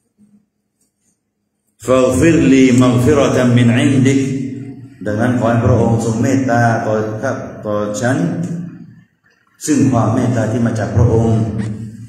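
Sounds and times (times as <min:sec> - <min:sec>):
man chanting a prayer: 0:01.8 - 0:08.5, 0:09.6 - 0:12.0.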